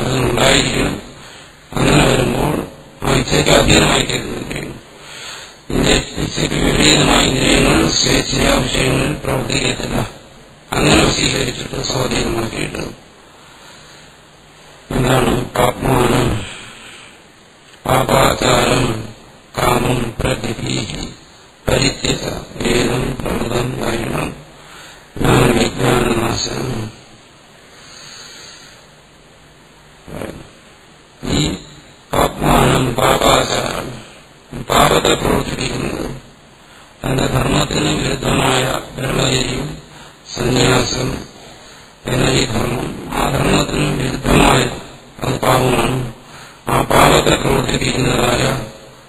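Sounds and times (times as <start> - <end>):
man speaking: 0.0 - 4.8, 5.7 - 13.0, 14.9 - 17.1, 17.8 - 24.5, 25.2 - 27.0, 30.1 - 30.6, 31.2 - 36.2, 37.0 - 48.9
faint background hiss: 0.0 - 49.0.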